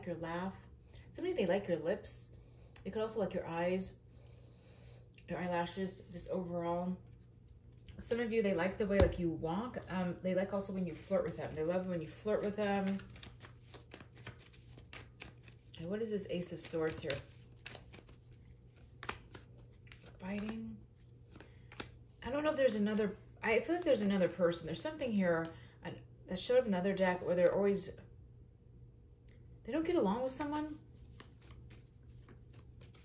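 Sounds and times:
cards clicking and snapping: 12.8 - 15.7, 16.6 - 20.6, 21.2 - 22.0, 31.1 - 33.0.

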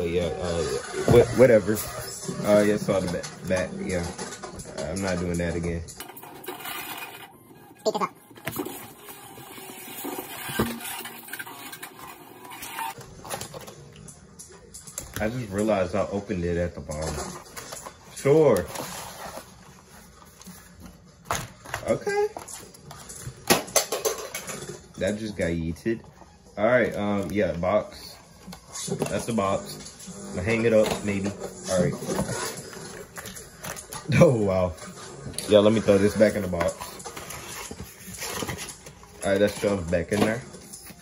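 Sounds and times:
cardboard and plastic packaging rustling: 1.0 - 14.0, 15.1 - 24.6, 26.6 - 41.0
cardboard packaging rustling: 16.9 - 23.1, 35.5 - 41.0.

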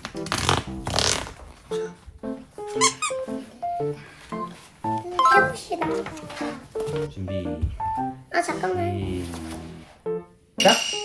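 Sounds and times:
playful bouncy background music: 0.0 - 11.0.

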